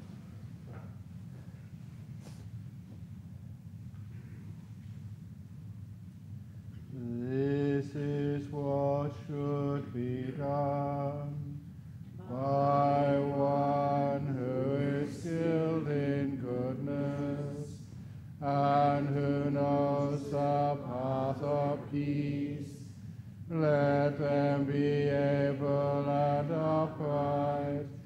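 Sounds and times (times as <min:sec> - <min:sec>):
monk chanting: 0:06.9 - 0:28.0
breaths: 0:17.8 - 0:18.4, 0:22.9 - 0:23.5.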